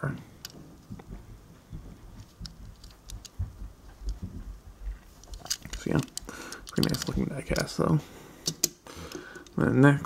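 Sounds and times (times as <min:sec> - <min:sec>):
low bumps: 0:00.9 - 0:05.2
toy car handling clicks and rubbing: 0:02.2 - 0:03.4, 0:05.1 - 0:07.8.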